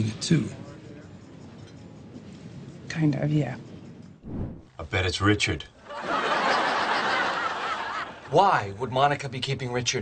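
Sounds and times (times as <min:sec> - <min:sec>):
studio audience laughing: 0:05.8 - 0:08.3.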